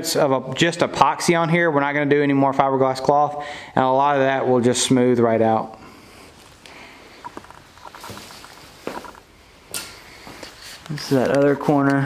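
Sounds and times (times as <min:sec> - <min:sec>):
faint footsteps on shop floor: 0:07.2 - 0:12.0.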